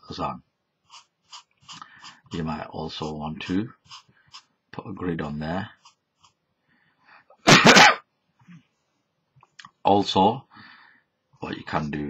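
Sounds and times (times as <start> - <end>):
person sneezing: 7.4 - 8.0.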